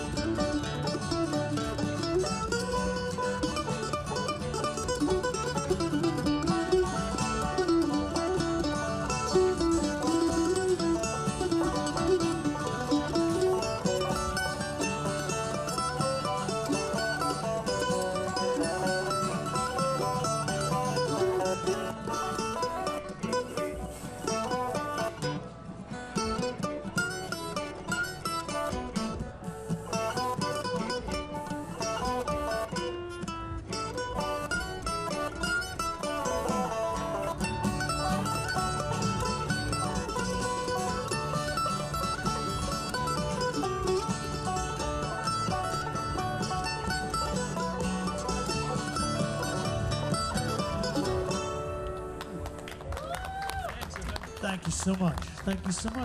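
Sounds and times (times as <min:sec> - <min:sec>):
acoustic guitar: 0:00.0 - 0:56.0
banjo picking: 0:00.0 - 0:56.0
mandolin picking: 0:00.0 - 0:56.0.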